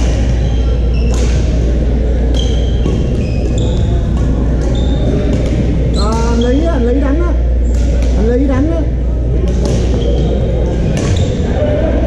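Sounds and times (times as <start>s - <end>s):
steady low hum: 0.0s - 12.0s
racket hitting shuttlecock: 1.0s - 1.6s
shoes squeaking on hardwood floor: 2.4s - 4.0s.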